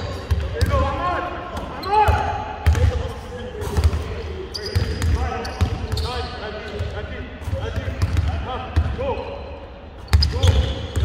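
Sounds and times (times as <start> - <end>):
players' voices echoing: 0.0 - 11.0.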